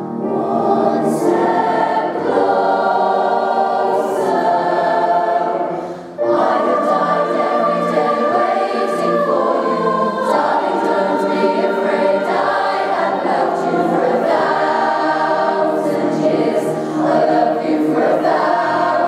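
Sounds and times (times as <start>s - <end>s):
choir singing in harmony: 0.0s - 19.0s.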